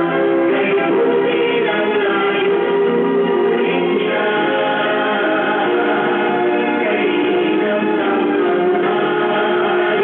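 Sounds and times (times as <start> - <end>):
group of voices singing: 0.0 - 10.0.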